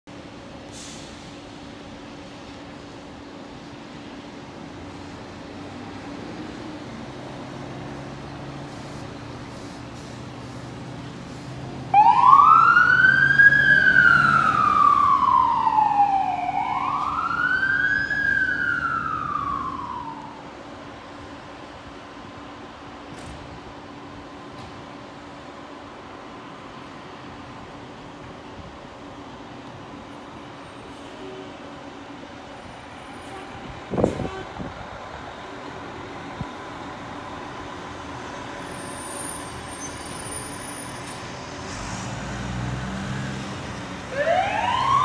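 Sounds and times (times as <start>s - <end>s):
fire engine rumbling: 0.1s - 45.0s
siren wailing: 11.9s - 20.5s, 44.1s - 45.0s.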